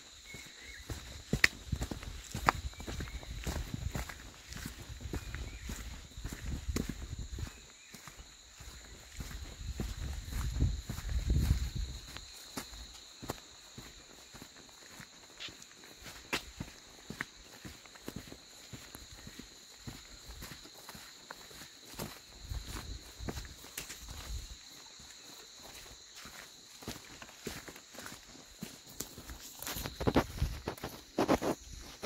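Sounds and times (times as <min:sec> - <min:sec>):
footsteps crunching on dirt: 0:00.0 - 0:32.0
high-pitched insect drone: 0:00.0 - 0:32.0.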